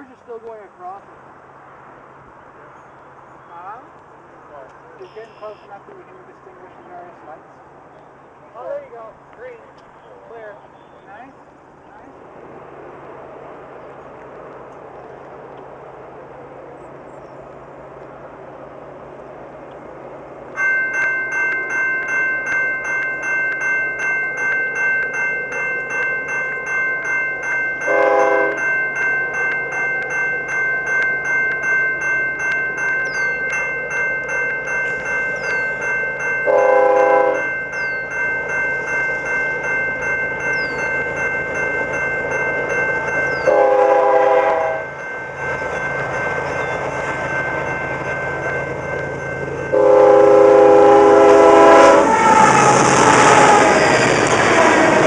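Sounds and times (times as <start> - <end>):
train engine and wheel noise: 0.0 - 55.0
level-crossing bell ringing: 5.0 - 6.6, 20.5 - 55.0
locomotive air horn blasts: 27.9 - 28.6, 36.5 - 37.4, 43.4 - 44.9, 49.7 - 53.8.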